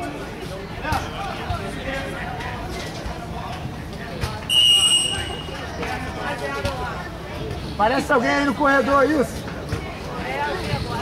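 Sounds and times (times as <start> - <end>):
people talking: 0.0 - 11.0
referee's whistle blast: 4.5 - 5.5.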